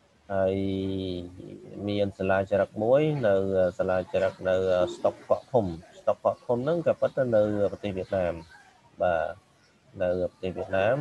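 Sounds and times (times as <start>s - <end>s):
man lecturing: 0.3s - 9.4s, 10.0s - 11.0s.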